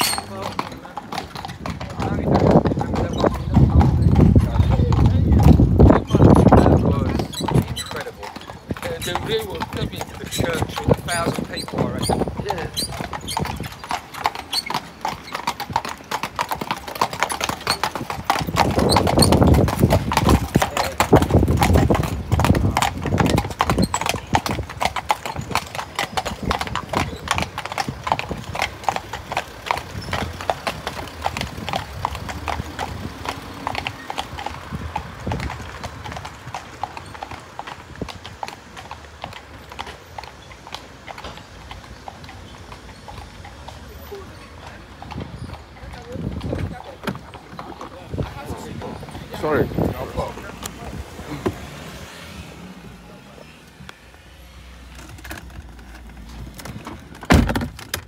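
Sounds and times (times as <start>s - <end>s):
horse hooves clip-clopping on pavement: 0.0s - 58.0s.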